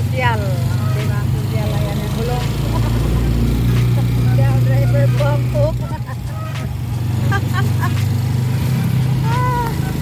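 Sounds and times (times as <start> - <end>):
motorcycle engine drone: 0.0 - 10.0.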